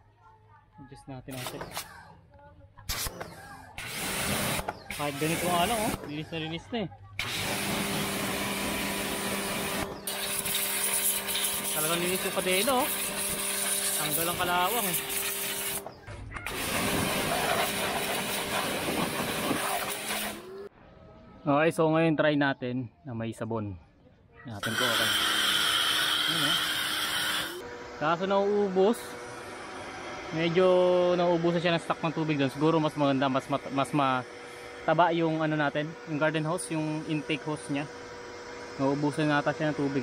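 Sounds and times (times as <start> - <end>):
high-pressure water jet hissing: 2.9 - 6.1, 7.2 - 15.9, 16.5 - 20.5, 24.6 - 29.2
pressure washer pump humming: 3.0 - 6.6, 7.2 - 20.7, 24.6 - 40.0.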